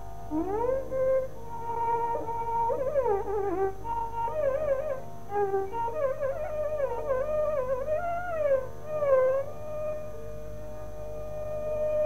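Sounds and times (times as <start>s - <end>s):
faint steady drone: 0.0s - 12.0s
violin sliding melody: 0.0s - 12.0s.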